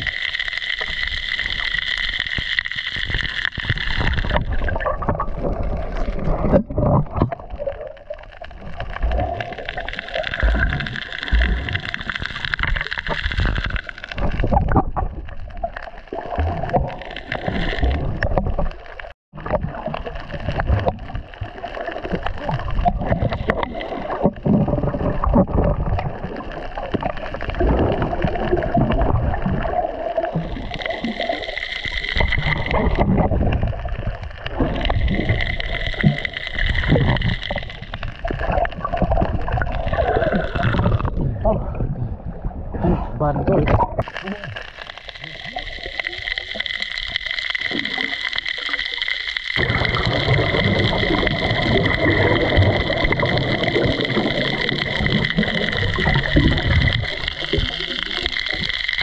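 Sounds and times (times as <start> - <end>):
water rushing and gurgling underwater: 0.0 - 59.0.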